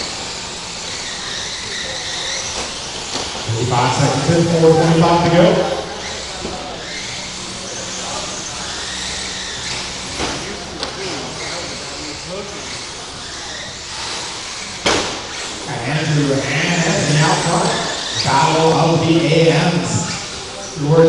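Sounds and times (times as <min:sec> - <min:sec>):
rc car motor whine: 0:00.0 - 0:21.0.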